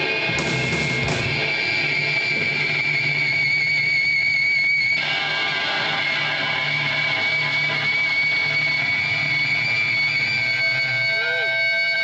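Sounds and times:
electric guitar feedback drone: 0.0s - 12.0s.

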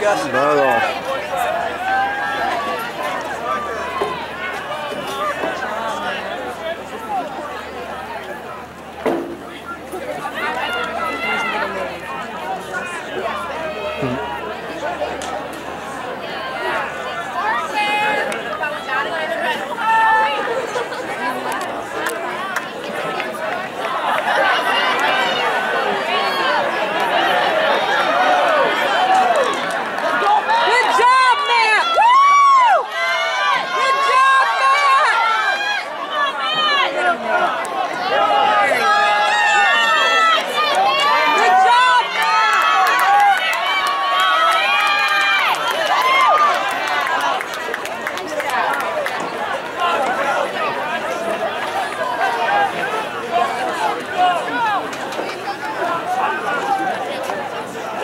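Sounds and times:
crowd talking: 0.0s - 58.0s.

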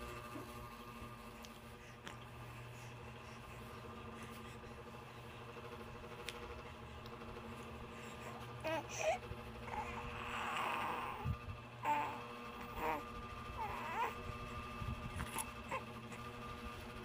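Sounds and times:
low hum: 0.0s - 17.0s
infant cooing: 8.6s - 14.2s.

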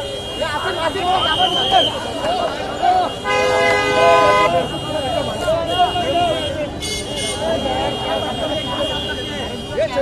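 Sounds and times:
car horn: 0.0s - 2.2s, 2.9s - 10.0s
crowd shouting and calling: 0.0s - 10.0s.

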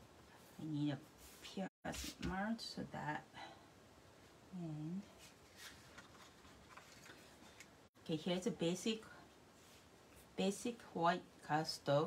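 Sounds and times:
hands rustling cardstock: 5.4s - 7.8s.

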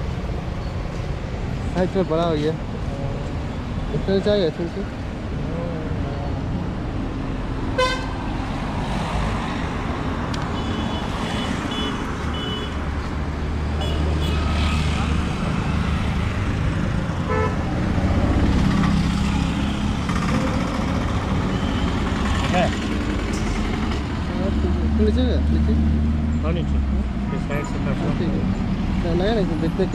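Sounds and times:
road traffic rumble: 0.0s - 29.9s
vehicle horns tooting: 7.8s - 8.2s, 10.5s - 12.8s, 13.8s - 14.6s, 17.3s - 17.6s.

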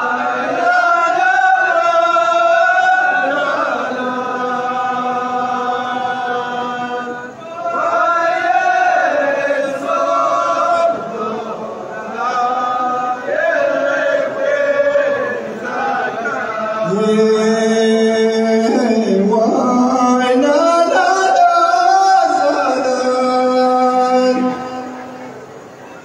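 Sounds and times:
men chanting in unison: 0.0s - 24.7s.

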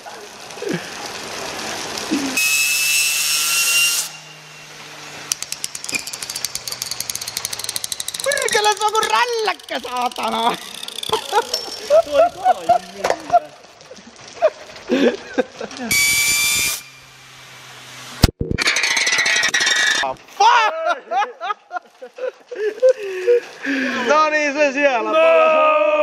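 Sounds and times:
metal spinner grinding on concrete: 0.0s - 20.2s.

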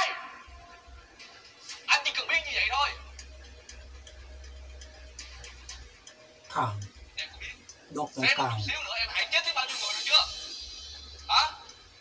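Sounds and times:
man shouting angrily: 7.9s - 8.7s.

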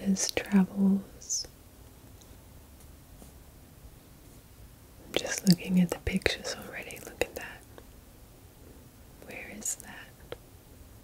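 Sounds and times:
person whispering: 0.0s - 1.5s, 5.1s - 7.6s, 9.2s - 10.2s.

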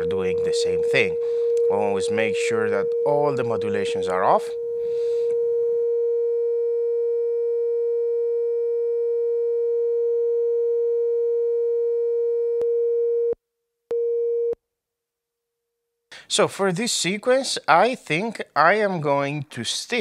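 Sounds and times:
steady oscillator tone: 0.0s - 14.6s.

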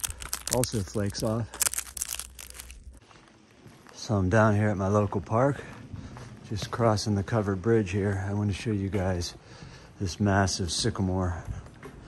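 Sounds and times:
bark crackling and tearing: 0.0s - 3.0s.

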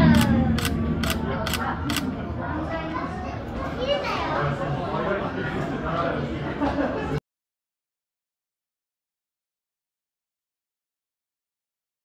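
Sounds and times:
children talking and calling out: 0.0s - 5.2s.

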